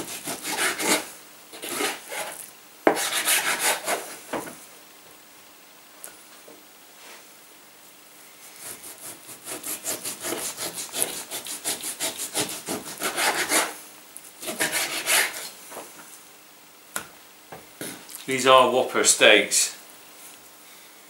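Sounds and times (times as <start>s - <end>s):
knife sawing through meat: 0.0s - 2.4s, 3.0s - 4.0s, 8.6s - 13.8s, 14.4s - 15.5s.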